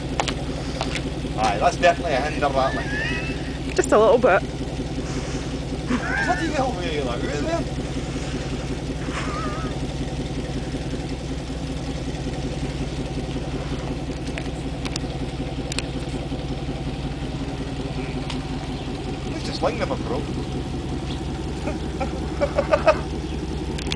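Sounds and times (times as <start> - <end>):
car engine idling: 0.0 - 23.9
faint clicks: 14.1 - 16.0.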